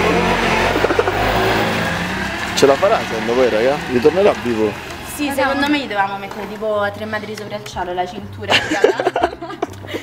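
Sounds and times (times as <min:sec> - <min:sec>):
motor scooter engine humming: 0:00.0 - 0:10.0.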